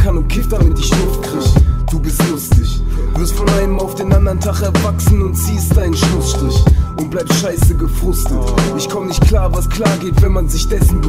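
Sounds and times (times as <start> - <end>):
heavy bass and drum hits: 0.0 - 7.0, 7.6 - 11.0
rapping over a beat: 0.0 - 11.0.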